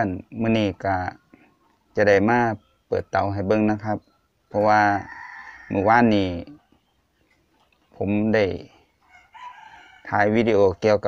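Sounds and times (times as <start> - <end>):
person speaking: 0.0 - 1.3, 1.9 - 6.7, 7.9 - 8.8
distant rooster crowing: 0.8 - 6.9, 8.6 - 10.8.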